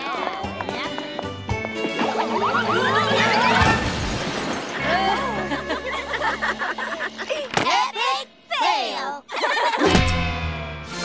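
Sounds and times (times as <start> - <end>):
music: 0.0 - 4.0, 4.8 - 7.5, 9.9 - 11.0
cartoon girls laughing: 2.2 - 3.8, 4.8 - 7.5, 9.2 - 10.0.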